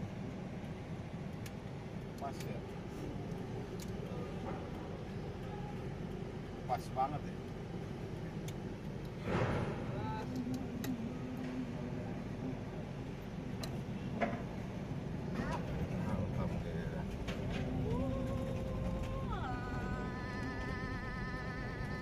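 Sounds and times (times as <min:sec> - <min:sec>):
vehicle engine and cabin rumble: 0:00.0 - 0:22.0.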